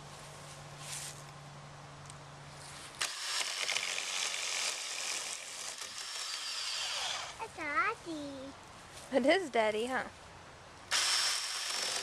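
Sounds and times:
electric chainsaw cutting log: 3.0s - 7.4s, 10.9s - 12.0s.

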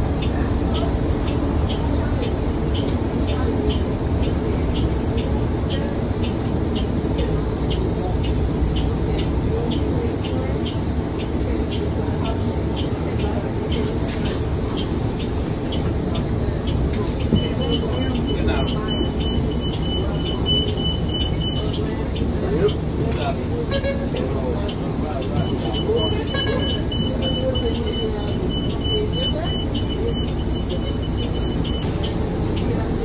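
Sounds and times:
bus engine rumble: 0.0s - 33.0s
bus warning tone: 0.0s - 33.0s
faint voices: 0.0s - 33.0s.

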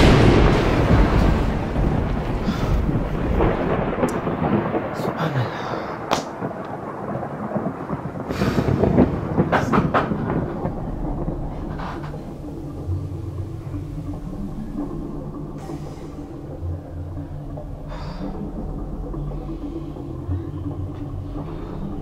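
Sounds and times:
thunder rumbling and cracking: 0.0s - 22.0s.

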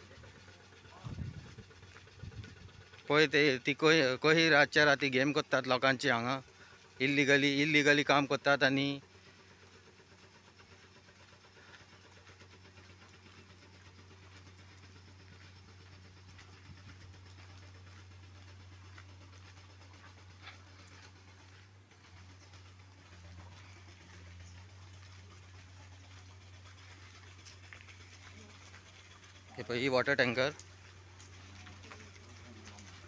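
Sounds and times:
faint low engine hum: 0.0s - 33.0s.

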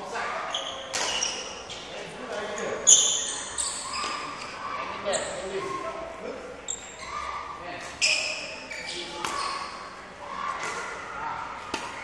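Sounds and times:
sports shoes squeaking on court: 0.5s - 5.8s, 6.6s - 9.9s.

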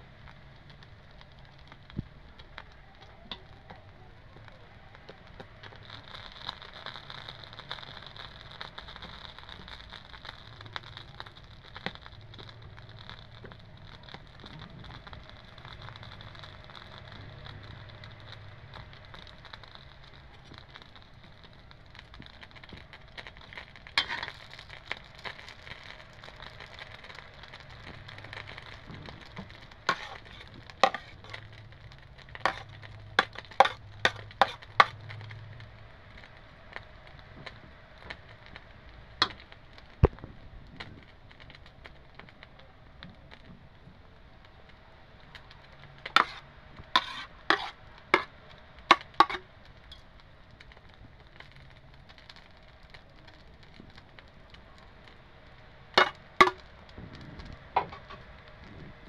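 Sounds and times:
food frying in a pan: 0.0s - 59.0s.

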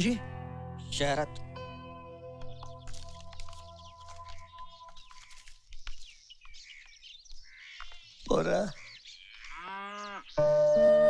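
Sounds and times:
film background music: 0.0s - 4.9s
bird chirps: 2.4s - 11.0s.

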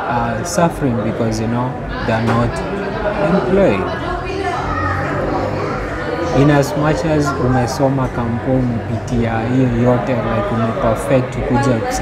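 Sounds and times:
background voices with children: 1.6s - 10.8s.

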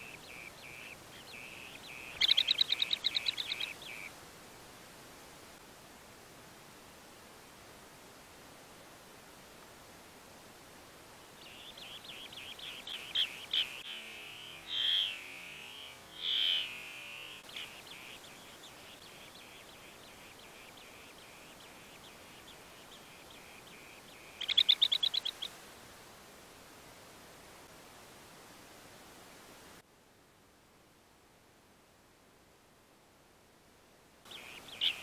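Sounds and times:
bee-eaters chirping: 0.0s - 4.1s, 11.4s - 25.5s, 34.3s - 35.0s.

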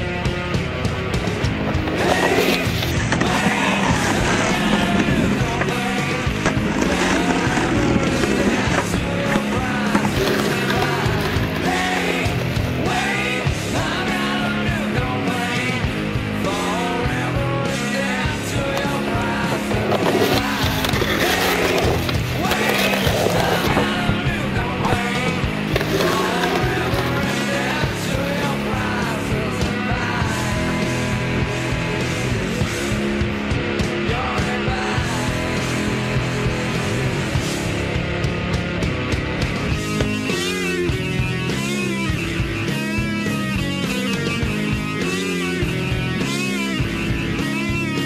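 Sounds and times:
background music: 0.0s - 48.0s
skateboard wheels rolling on pavement: 0.5s - 32.2s.

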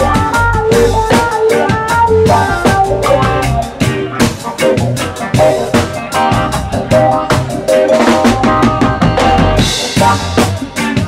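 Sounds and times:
drum kit beat: 0.0s - 11.0s
funk blues band playing: 0.0s - 11.0s.

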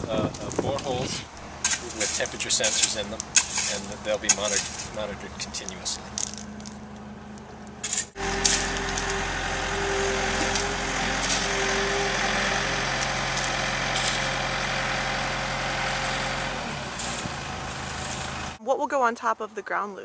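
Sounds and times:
diesel engine running: 0.0s - 18.6s.

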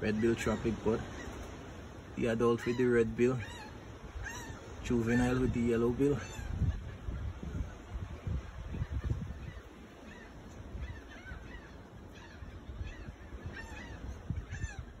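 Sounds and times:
harsh bird calls: 0.0s - 15.0s.

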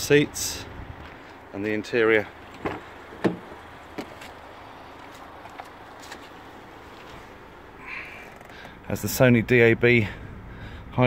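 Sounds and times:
background rumble and hiss: 0.0s - 11.0s.

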